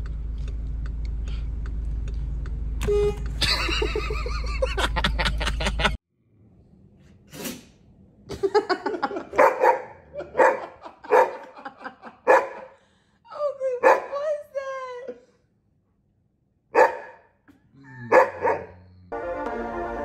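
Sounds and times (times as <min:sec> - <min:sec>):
dog barking: 0:09.3 - 0:11.6, 0:12.2 - 0:12.8, 0:13.8 - 0:14.2, 0:16.7 - 0:17.4, 0:18.1 - 0:19.0.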